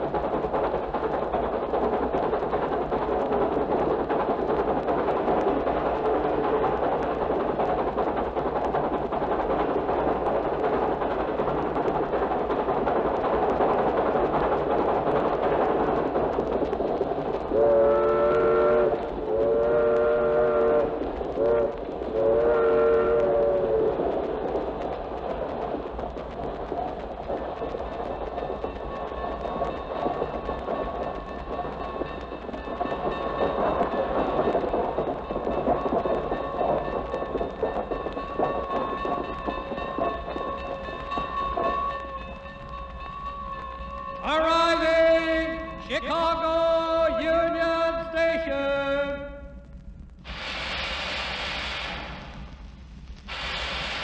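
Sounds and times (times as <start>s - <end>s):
passing train rumble: 0.0s - 54.0s
train horn blasts: 17.6s - 23.7s.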